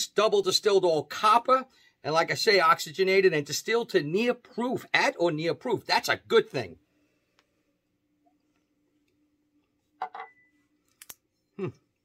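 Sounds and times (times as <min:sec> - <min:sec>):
man humming appreciatively: 0:11.6 - 0:11.8.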